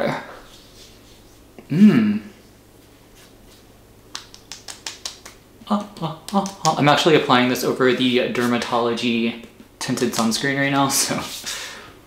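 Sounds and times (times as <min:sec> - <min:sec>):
fingertips patting face: 0:04.1 - 0:07.1.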